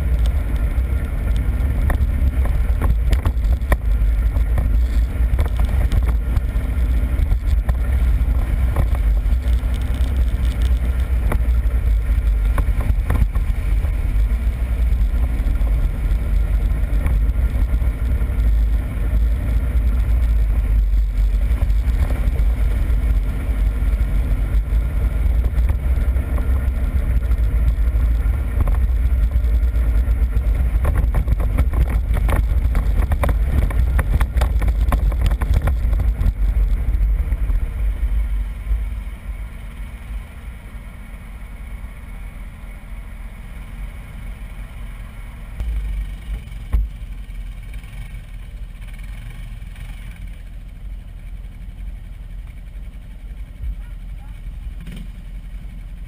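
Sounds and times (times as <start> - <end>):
vehicle engine low rumble: 0.0 - 56.0
knocks over bumps: 25.3 - 37.5.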